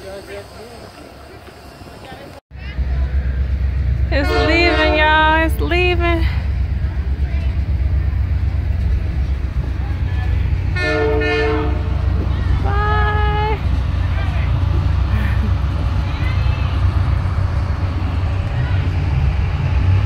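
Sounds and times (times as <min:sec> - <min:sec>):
deep rumble of train: 0:00.0 - 0:20.0
locomotive horn blasts: 0:04.1 - 0:05.5, 0:10.7 - 0:12.1.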